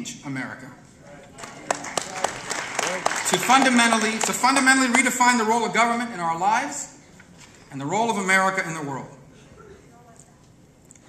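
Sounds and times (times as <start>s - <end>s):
audience applause in large hall: 1.3s - 5.4s.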